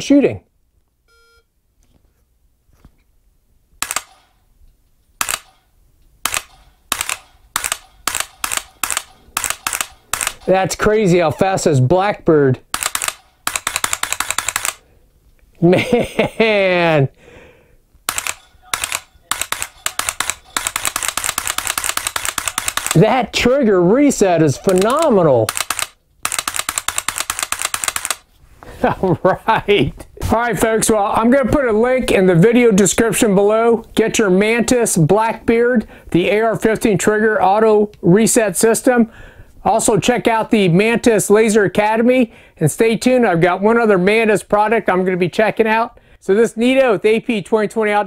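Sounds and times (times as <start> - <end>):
rifle trigger clicks: 3.8 - 4.3, 5.2 - 5.6, 6.2 - 10.5, 12.7 - 14.8, 18.1 - 23.0, 24.7 - 28.2.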